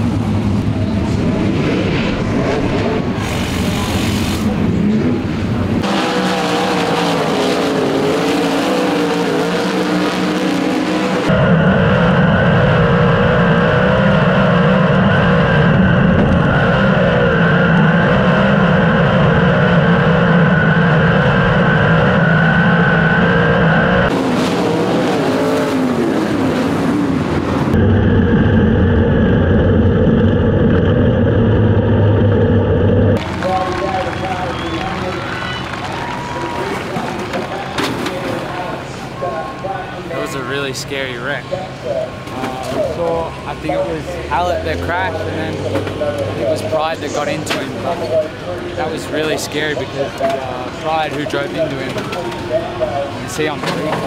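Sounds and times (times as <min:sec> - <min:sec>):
racing car engine: 0:00.0 - 0:54.0.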